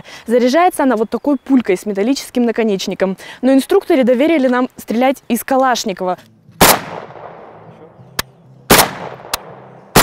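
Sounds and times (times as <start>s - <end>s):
rifle shots with ringing echo: 6.6s - 7.7s, 8.7s - 10.0s
faint sharp cracks: 8.2s - 9.6s.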